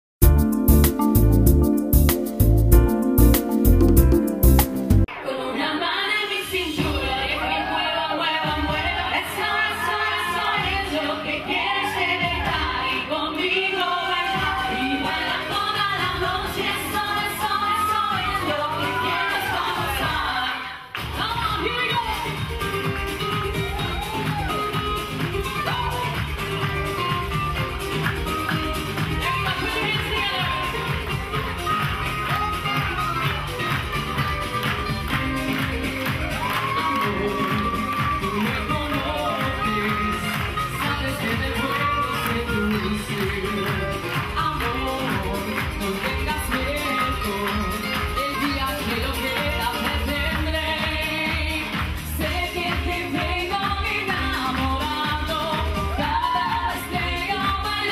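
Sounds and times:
salsa band with singer: 0.2 - 57.9.

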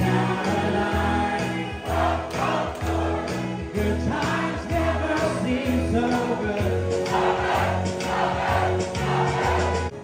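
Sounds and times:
voices singing together: 0.0 - 9.9.

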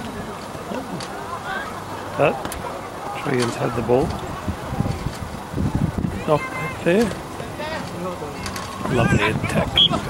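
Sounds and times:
players shouting: 6.0 - 10.0
word spoken close to microphone: 8.8 - 10.0.

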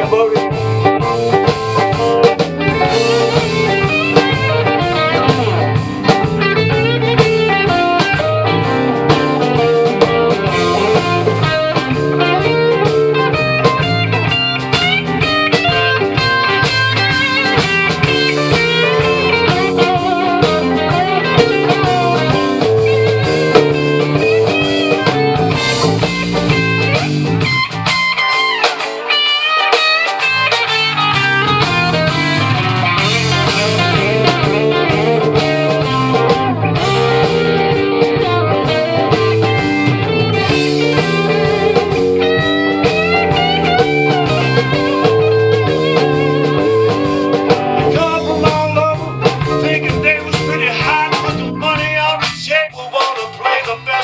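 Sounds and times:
blues band playing: 0.0 - 54.0
electric guitar: 0.0 - 54.0.

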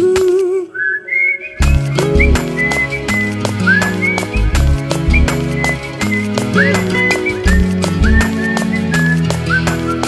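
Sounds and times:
high whistled tune: 0.7 - 10.0
film song with band: 1.6 - 10.0.

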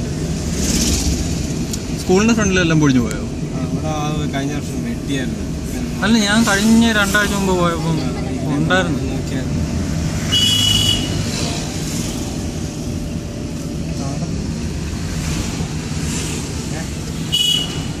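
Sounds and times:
car engine and tyre rumble: 0.0 - 18.0.

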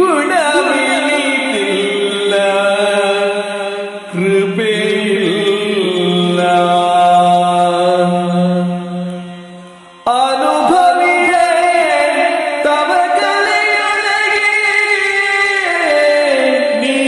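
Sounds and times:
man singing long gliding notes: 0.0 - 17.0.

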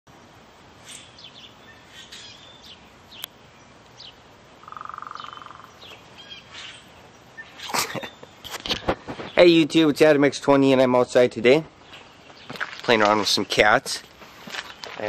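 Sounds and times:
songbirds chirping: 0.1 - 15.0
buzzy bird trill: 0.8 - 3.3, 4.0 - 8.6.

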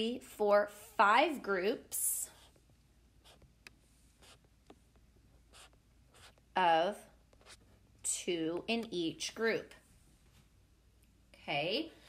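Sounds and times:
stylus scratching on tablet screen: 2.1 - 6.6, 7.2 - 7.9.

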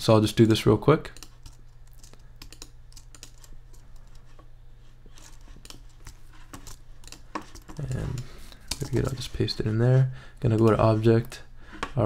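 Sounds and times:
low steady hum: 0.0 - 12.0
computer mouse and keyboard clicks: 1.0 - 4.4, 5.1 - 9.6.

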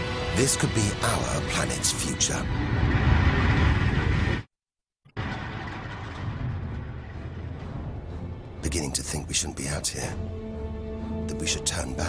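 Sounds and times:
deep rumbling soundtrack bed: 0.0 - 4.5, 5.1 - 12.0.

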